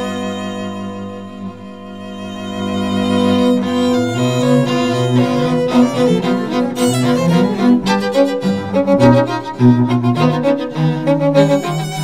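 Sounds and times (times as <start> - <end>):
string quartet playing: 0.0 - 12.0.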